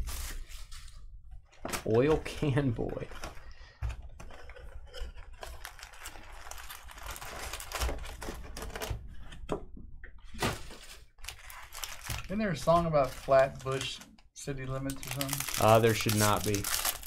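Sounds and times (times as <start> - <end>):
cardboard and foil rustling: 1.6 - 8.9, 10.3 - 14.1, 14.9 - 17.0.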